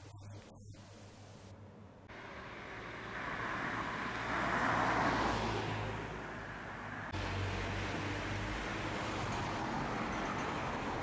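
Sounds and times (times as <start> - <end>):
street traffic: 1.3 - 11.0
car passing by: 2.1 - 11.0.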